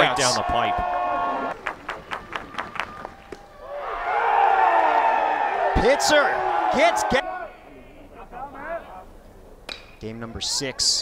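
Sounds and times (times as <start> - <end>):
crowd cheering: 0.0 - 8.9
sharp claps: 1.5 - 3.5.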